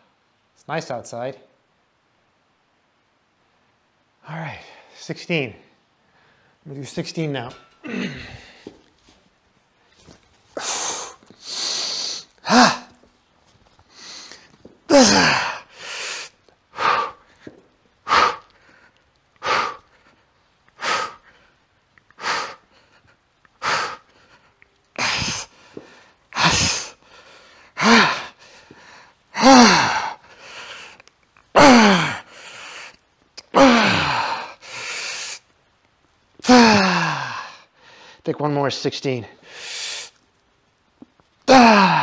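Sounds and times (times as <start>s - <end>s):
man grunting with strain: 7.5s - 8.7s, 12.4s - 13.0s, 14.9s - 15.7s, 25.0s - 25.5s, 27.8s - 28.4s, 29.4s - 30.2s, 31.6s - 32.3s, 33.5s - 34.6s, 36.4s - 37.5s, 41.5s - 42.0s
man exhaling forcefully: 10.6s - 12.9s, 13.9s - 17.3s, 25.0s - 28.4s, 36.5s - 37.6s.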